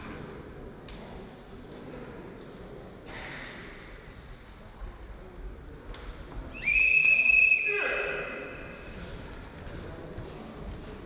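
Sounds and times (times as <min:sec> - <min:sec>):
whistle blown: 0:06.5 - 0:08.6.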